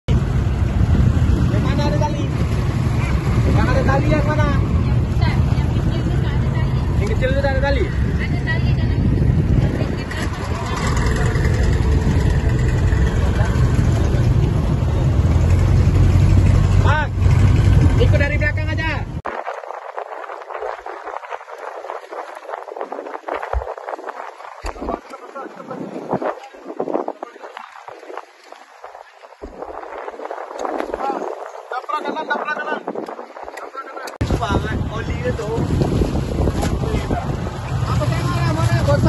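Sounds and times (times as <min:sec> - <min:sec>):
water noise: 0:00.0 - 0:39.0
wind: 0:00.0 - 0:39.0
motorboat engine humming: 0:00.1 - 0:31.8, 0:34.2 - 0:39.0.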